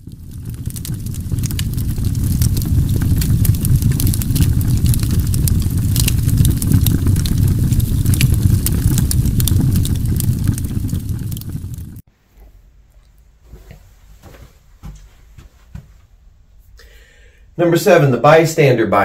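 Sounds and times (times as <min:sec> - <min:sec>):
low rumble of fire: 0:00.0 - 0:12.1
wood fire crackling and popping: 0:00.0 - 0:12.1.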